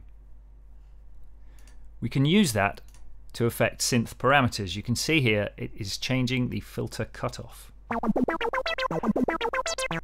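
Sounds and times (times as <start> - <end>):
synthesizer arpeggio: 7.9 - 10.0.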